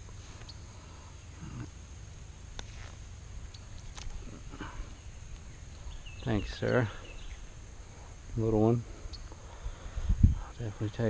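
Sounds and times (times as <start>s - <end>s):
thin high hum: 0.0s - 11.0s.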